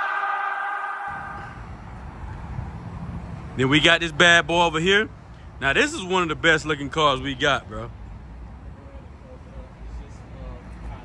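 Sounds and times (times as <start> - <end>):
low outdoor rumble: 1.1 - 11.0.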